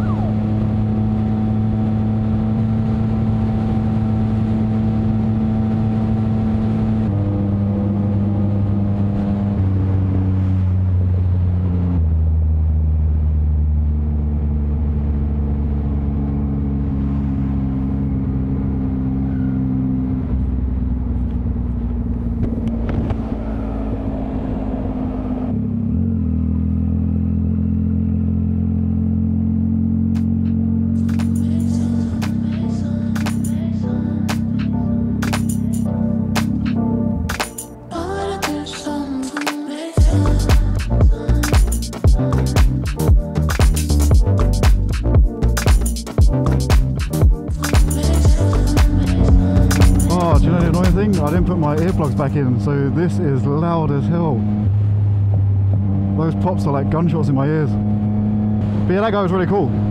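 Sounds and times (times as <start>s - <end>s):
motorcycle engine drone: 0.0s - 39.2s, 40.0s - 59.9s.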